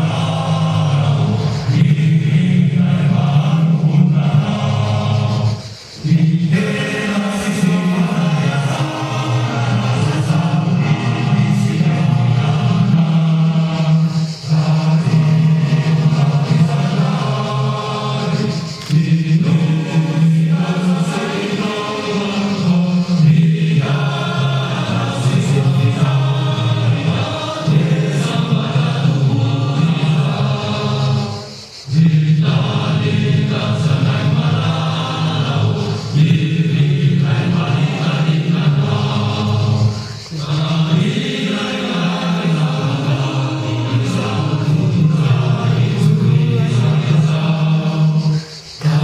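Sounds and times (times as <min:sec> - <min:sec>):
group singing in chorus: 0:00.0 - 0:49.0
man singing through a microphone: 0:00.0 - 0:49.0.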